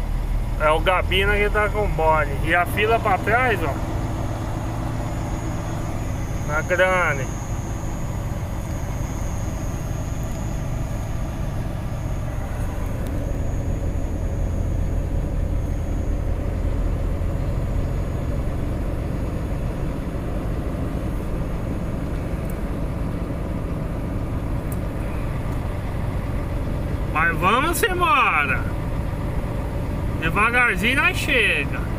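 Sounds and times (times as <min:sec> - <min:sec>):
faint high whine: 0:00.0 - 0:28.7
diesel truck engine rumbling: 0:00.0 - 0:31.9.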